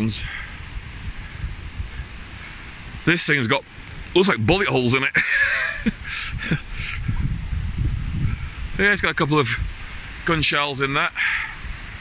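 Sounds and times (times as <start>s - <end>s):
wind rumbling on microphone: 0.0s - 12.0s
microphone handling noise: 6.0s - 8.8s.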